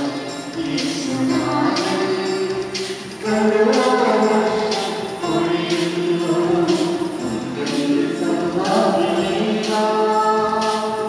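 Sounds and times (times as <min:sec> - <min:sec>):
choir singing a hymn: 0:00.0 - 0:11.0
tambourine shaken: 0:00.0 - 0:11.0.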